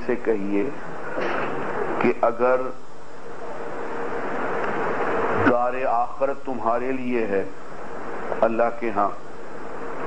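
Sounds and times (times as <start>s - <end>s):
faint constant hum: 0.0s - 10.0s
steady background hiss: 0.0s - 10.0s.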